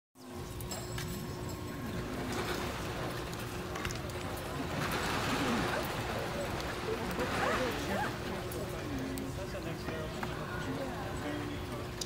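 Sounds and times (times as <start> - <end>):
indoor crowd chatter: 0.4 - 12.0.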